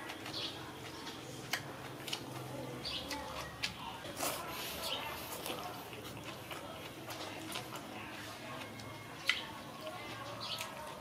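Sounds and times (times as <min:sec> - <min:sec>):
person chewing noodles: 0:00.0 - 0:11.0.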